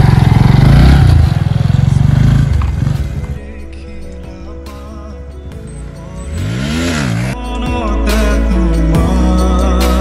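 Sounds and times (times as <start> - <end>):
motorcycle engine revving: 0.0 - 3.5, 5.5 - 7.4
background music: 1.0 - 10.0.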